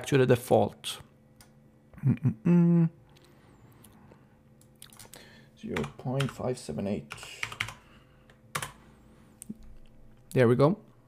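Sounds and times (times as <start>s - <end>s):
computer keyboard clicks: 5.8s - 6.4s, 7.1s - 8.8s.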